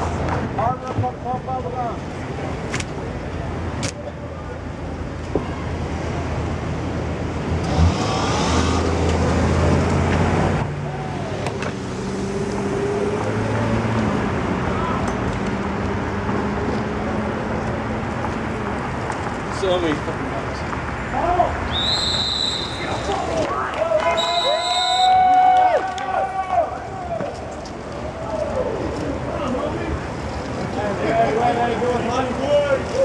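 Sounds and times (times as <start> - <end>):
car passing close: 7.4 - 18.7.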